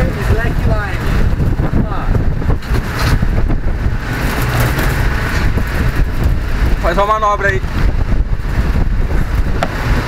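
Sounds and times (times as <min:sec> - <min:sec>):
city street traffic rumble: 0:00.0 - 0:10.0.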